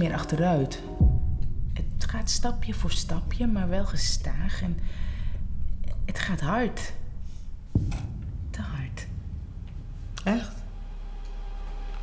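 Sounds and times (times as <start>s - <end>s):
low steady hum: 0.0s - 12.0s
dull thump: 7.7s - 10.2s.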